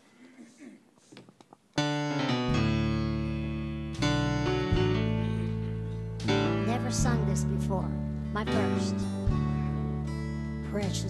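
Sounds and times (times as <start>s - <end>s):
keyboard playing held chords: 1.8s - 11.0s.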